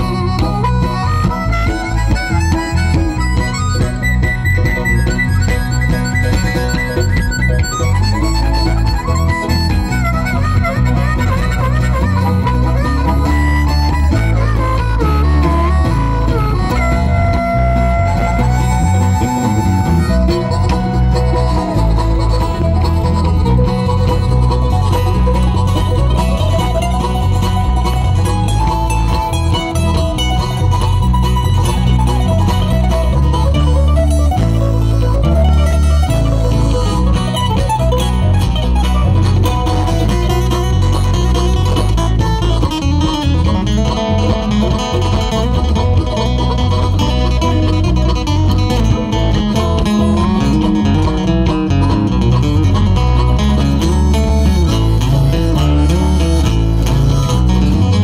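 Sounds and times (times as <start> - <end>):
acoustic guitar: 0.0 - 58.0
harmonica: 0.0 - 58.0
mandolin: 0.0 - 58.0
walking bass line: 0.0 - 58.0.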